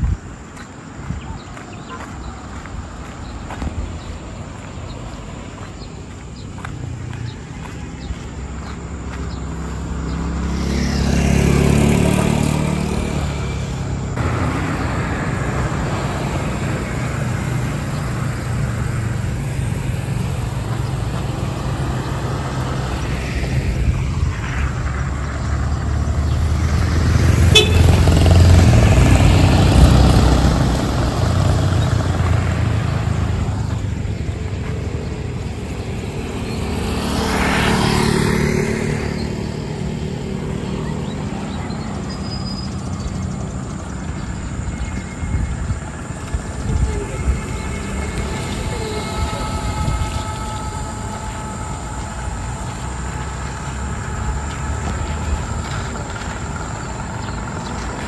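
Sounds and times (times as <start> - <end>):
low traffic rumble: 0.0 - 58.0
vehicles passing: 0.0 - 58.0.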